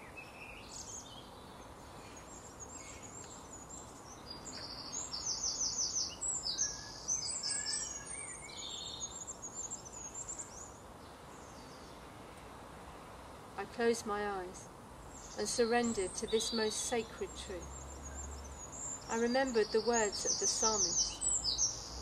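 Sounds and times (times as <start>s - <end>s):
faint background noise: 0.0s - 22.0s
small birds chirping: 0.0s - 22.0s.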